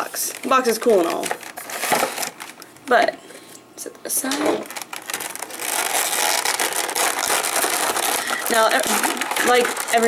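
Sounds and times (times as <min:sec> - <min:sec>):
plastic packaging crinkling: 0:00.0 - 0:02.8, 0:04.3 - 0:10.0.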